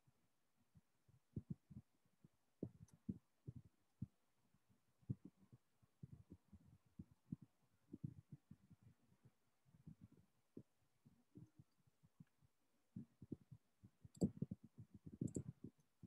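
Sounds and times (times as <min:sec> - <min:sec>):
faint irregular clicks and taps: 0:00.7 - 0:16.0.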